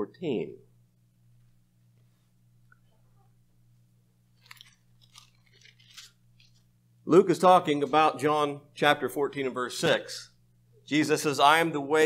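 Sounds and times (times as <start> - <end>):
low steady hum: 0.0 - 12.0
paper pages crinkling: 4.4 - 6.7.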